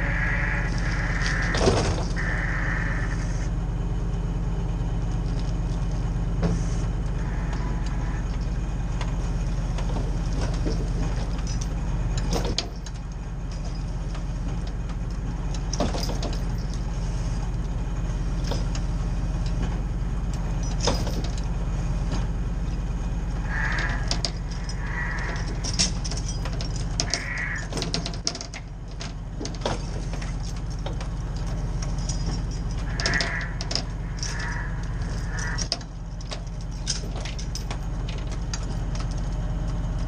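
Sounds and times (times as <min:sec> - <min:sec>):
truck engine running: 0:00.0 - 0:40.0.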